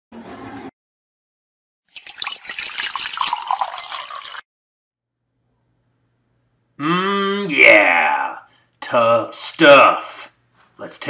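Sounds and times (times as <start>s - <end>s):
coffee pouring into mug: 1.9s - 4.4s.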